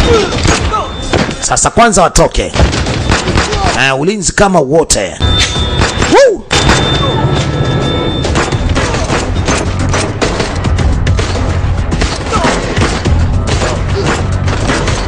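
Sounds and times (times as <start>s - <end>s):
action film score: 0.0s - 15.0s.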